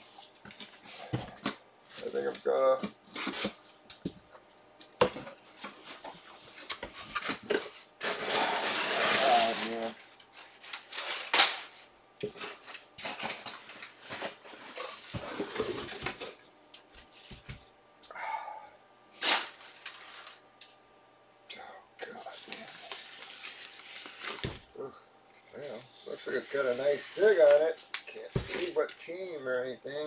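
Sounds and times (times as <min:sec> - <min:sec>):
paper and cardboard rustling: 0:00.1 - 0:03.7, 0:05.1 - 0:16.4, 0:22.0 - 0:24.7, 0:25.6 - 0:28.9.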